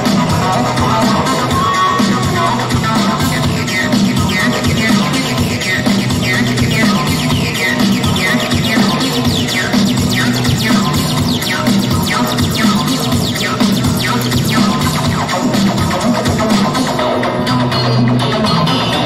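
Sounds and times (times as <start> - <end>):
electronic music: 0.0 - 19.0.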